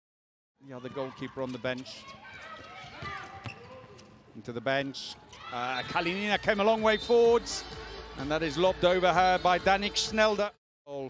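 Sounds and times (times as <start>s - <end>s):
ball bouncing on court floor: 2.0s - 4.2s
players calling in hall: 4.9s - 10.2s.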